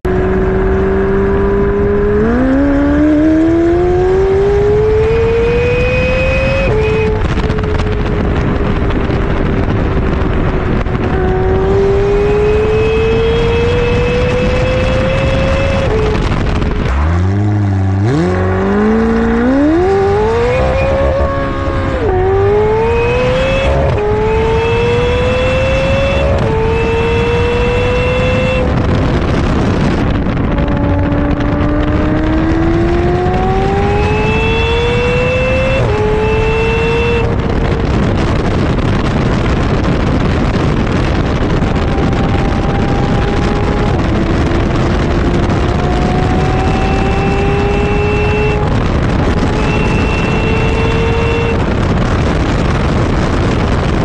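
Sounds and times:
car engine accelerating: 0.0s - 54.0s.

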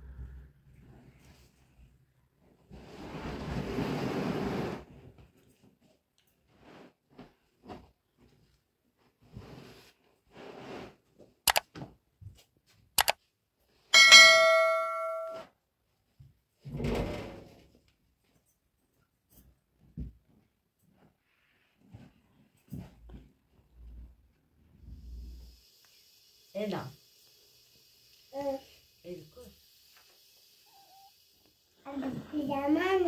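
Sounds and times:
sharp clicks: 11.5s - 11.7s
metal object clanging: 14.0s - 15.4s.

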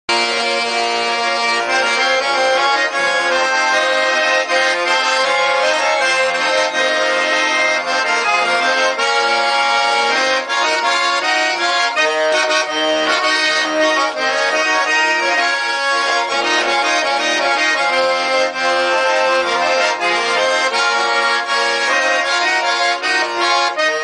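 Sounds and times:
button accordion playing chords: 0.1s - 24.0s.

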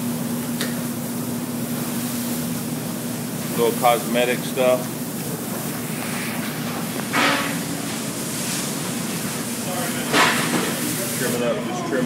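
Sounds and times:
steady low background hum: 0.0s - 12.0s.

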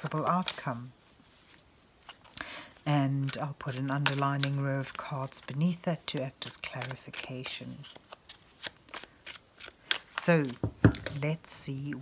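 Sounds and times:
cards being shuffled: 0.0s - 11.4s.

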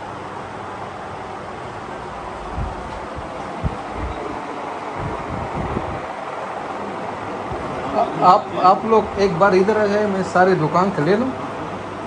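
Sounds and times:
room noise: 0.0s - 12.0s
soft low thuds and rumbles: 2.5s - 4.2s.

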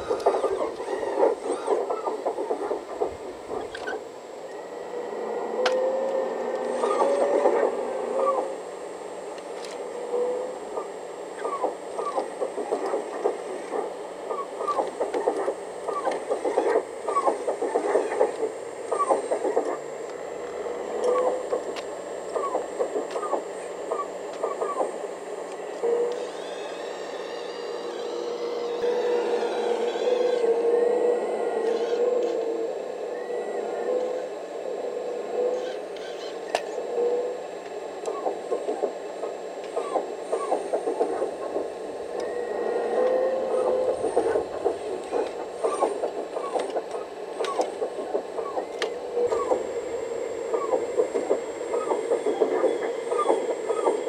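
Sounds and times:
steady hum: 0.0s - 54.0s
whirring with wavering whine: 0.0s - 54.0s.

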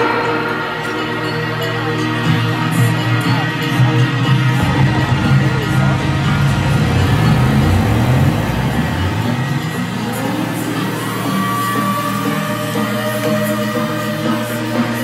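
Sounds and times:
electronic dance music: 0.0s - 15.0s
deep bass: 3.2s - 11.4s
rising tone: 4.5s - 13.2s.

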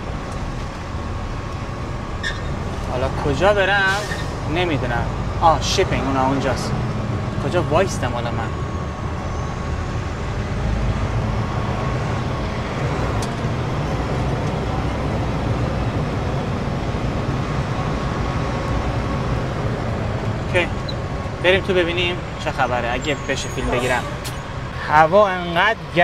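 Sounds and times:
truck diesel engine running: 0.0s - 26.0s
tyre and road noise: 0.0s - 26.0s.

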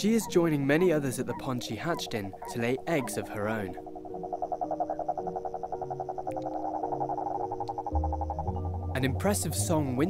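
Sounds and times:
toads croaking in chorus: 0.0s - 9.6s
soft sustained music notes: 0.0s - 10.0s.

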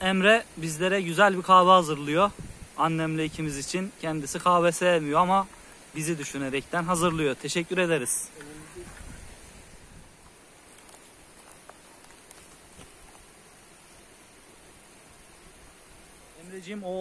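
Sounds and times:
man talking: 0.0s - 8.9s, 16.4s - 17.0s
faint rushing background noise: 0.0s - 17.0s.

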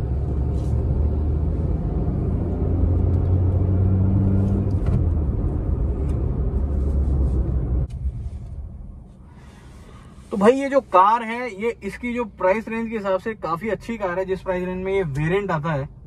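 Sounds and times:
car engine drone inside cabin: 0.0s - 16.0s.

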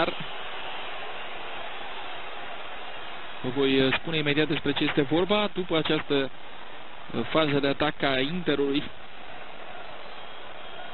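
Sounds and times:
stadium crowd noise: 0.0s - 10.9s.

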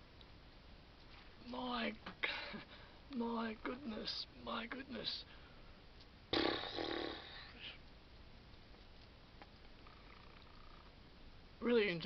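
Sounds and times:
faint breath: 5.2s - 5.8s.

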